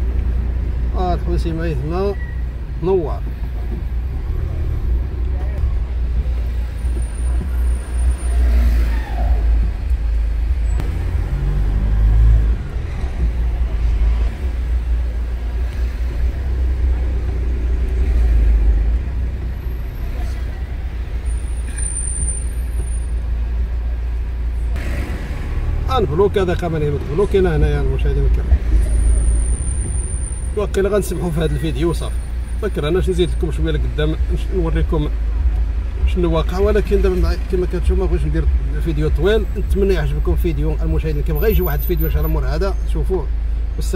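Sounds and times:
car engine and tyres rumbling: 0.0s - 43.9s.

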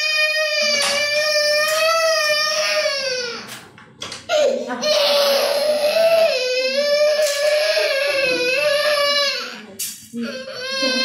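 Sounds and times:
toddler crying: 0.0s - 3.5s, 4.3s - 11.0s.

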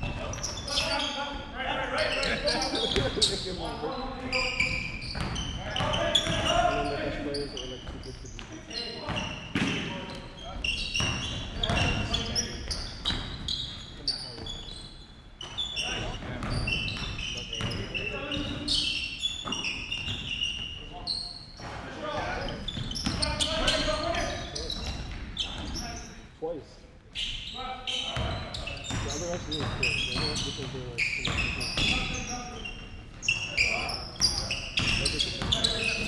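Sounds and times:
basketball bouncing on wooden floor: 11.0s - 12.1s.

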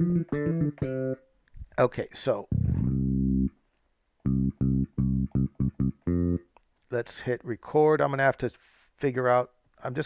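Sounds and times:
synth bass notes: 2.5s - 3.6s, 4.2s - 6.5s.

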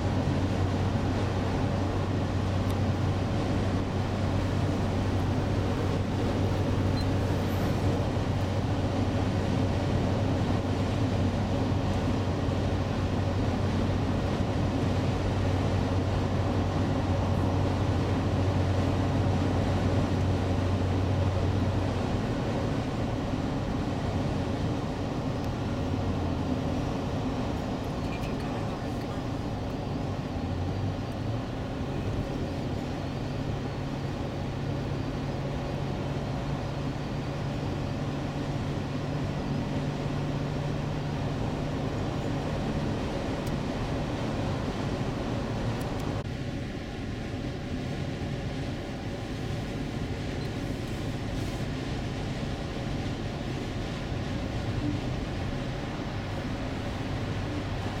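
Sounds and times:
tyre and road noise: 0.0s - 58.0s.

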